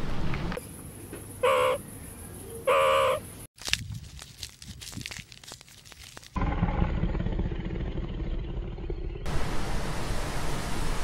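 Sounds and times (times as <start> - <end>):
meerkat high-pitched calls: 1.4 - 1.8, 2.6 - 3.2.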